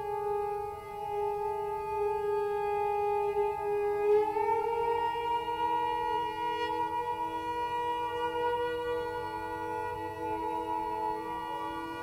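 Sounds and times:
bowed cello sustained note: 0.0s - 12.0s.

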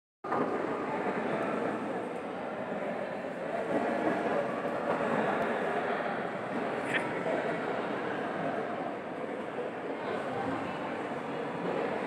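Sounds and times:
hubbub of indistinct voices: 0.2s - 12.0s.

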